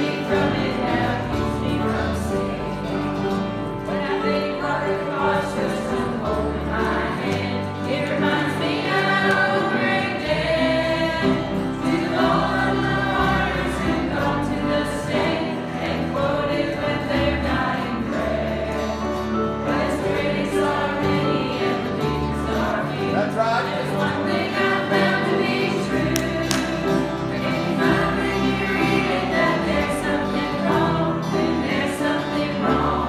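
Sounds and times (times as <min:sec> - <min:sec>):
choir singing gospel: 0:00.0 - 0:33.0
instrumental accompaniment: 0:00.0 - 0:33.0.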